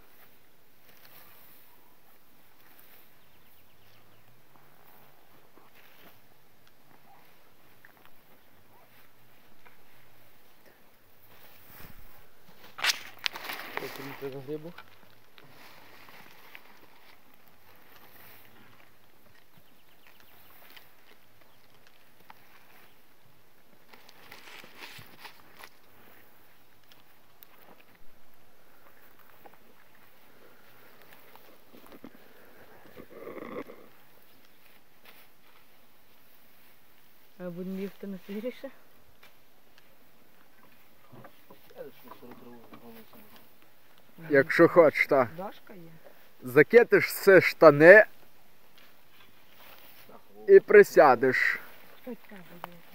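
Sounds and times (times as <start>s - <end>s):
rustling of hay being forked: 0.0s - 3.9s, 11.2s - 23.1s, 48.6s - 52.6s
grass rustling: 0.0s - 52.9s.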